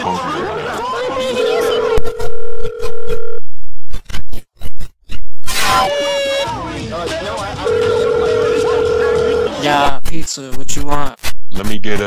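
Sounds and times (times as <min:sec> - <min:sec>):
pitch-warped voice clips: 0:00.4 - 0:03.0.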